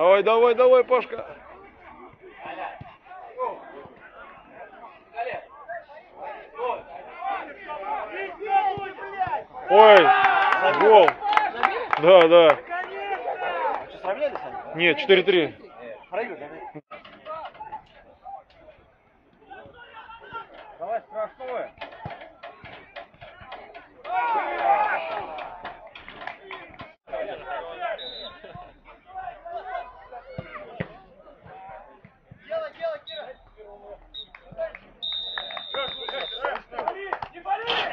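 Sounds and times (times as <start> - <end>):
footballers shouting: 0.0 - 37.9
players calling out: 0.0 - 37.9
referee's whistle: 27.6 - 28.5, 33.0 - 36.6.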